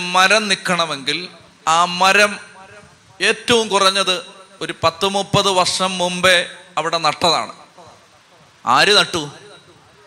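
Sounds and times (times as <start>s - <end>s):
man preaching into a microphone: 0.0s - 10.0s.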